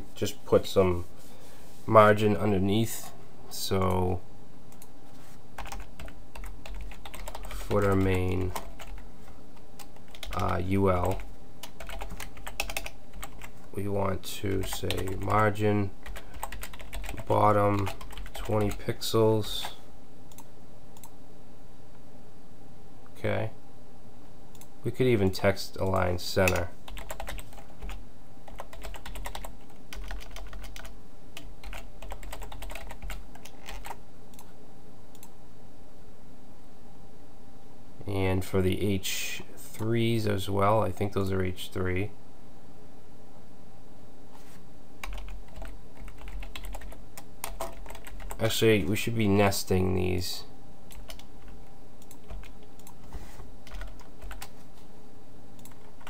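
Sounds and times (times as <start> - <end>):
computer keyboard typing: 5.6 - 9.0, 9.7 - 13.7, 14.5 - 18.8, 26.4 - 34.5, 45.0 - 48.5, 50.9 - 53.0, 53.6 - 54.6, 55.6 - 56.0.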